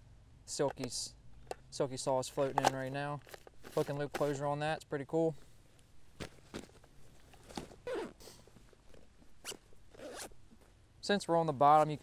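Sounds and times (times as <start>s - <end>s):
backpack fabric rustling: 2.4s - 4.4s, 6.1s - 10.8s
short squeaky scrapes: 9.4s - 10.4s.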